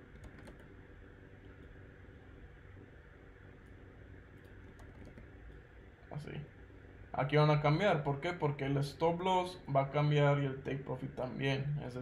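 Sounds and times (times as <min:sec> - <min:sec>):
low room hum: 0:00.0 - 0:12.0
keyboard and mouse clicks: 0:00.1 - 0:00.7, 0:04.4 - 0:05.3.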